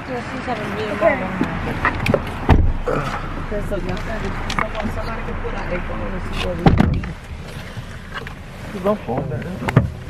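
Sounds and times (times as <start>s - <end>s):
car cabin rumble: 0.0s - 10.0s.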